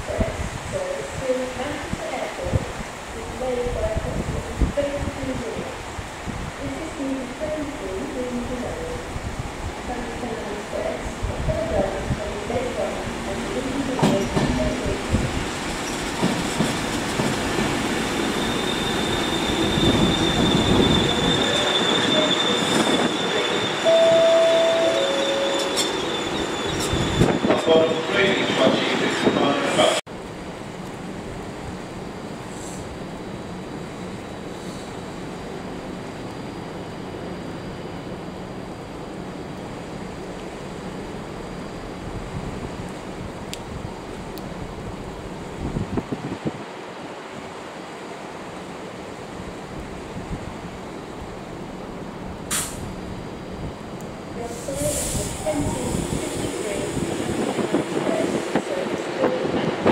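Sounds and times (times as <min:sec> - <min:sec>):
train wheels rumbling on rails: 0:00.0 - 0:38.2, 0:47.9 - 0:59.9
high wheel squeal: 0:17.4 - 0:30.0
two-note tone: 0:23.8 - 0:25.9.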